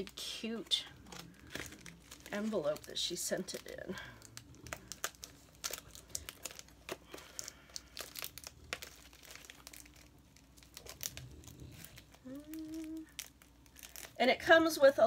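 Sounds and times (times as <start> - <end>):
packaging crinkling and rustling: 0.0 - 14.6.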